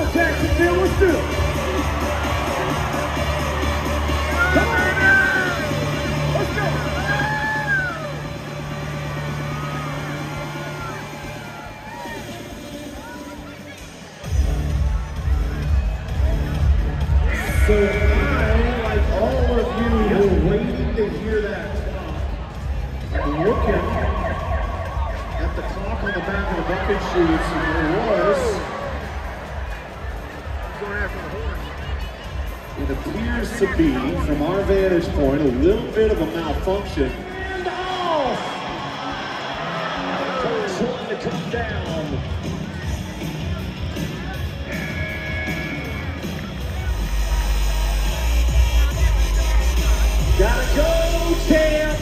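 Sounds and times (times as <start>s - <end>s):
crowd and public-address rumble: 0.0s - 52.0s
loud arena music with bass: 0.0s - 52.0s
voices yelling: 16.9s - 20.3s, 42.8s - 52.0s.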